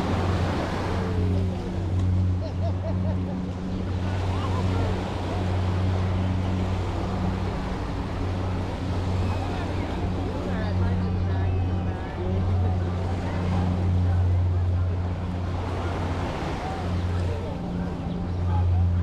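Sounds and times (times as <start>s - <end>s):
small waves washing on sand: 0.0s - 19.0s
steady low drone: 0.0s - 19.0s.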